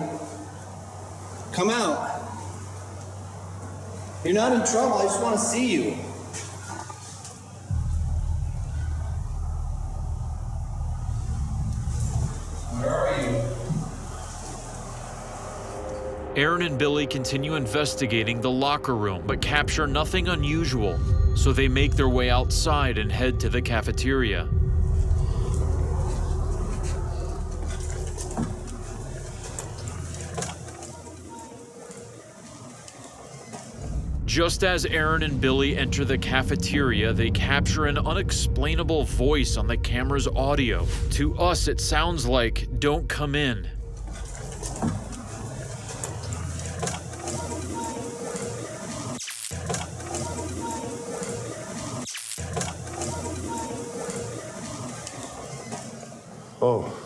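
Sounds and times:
faint steady hum: 0:00.0 - 0:33.0, 0:33.8 - 0:49.2
deep rumbling drone: 0:07.7 - 0:31.3, 0:33.8 - 0:49.0.

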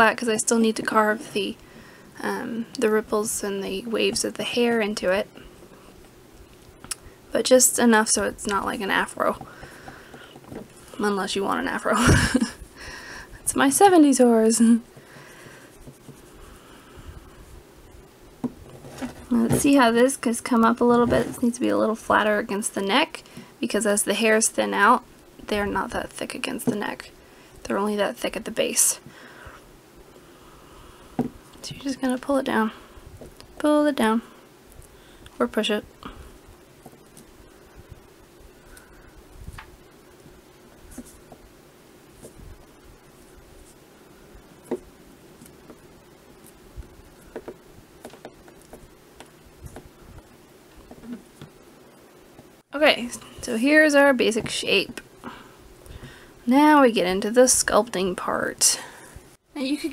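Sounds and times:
fingers rubbing clay: 0:15.7 - 0:16.6.

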